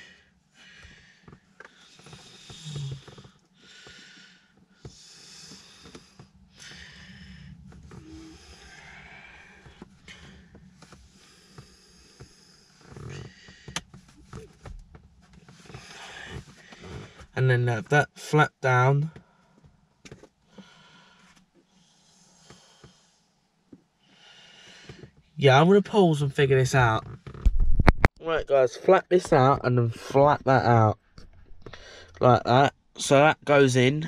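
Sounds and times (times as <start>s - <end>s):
heavy breathing: 0.0s - 14.7s, 15.5s - 17.3s, 20.5s - 23.3s, 24.0s - 25.2s, 31.3s - 32.2s.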